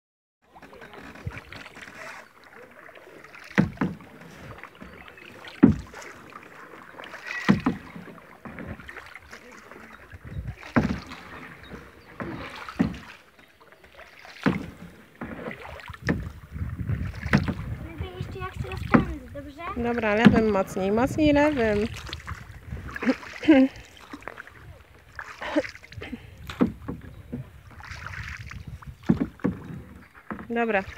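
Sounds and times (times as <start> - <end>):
kayak paddle strokes in water: 0.4 - 30.9.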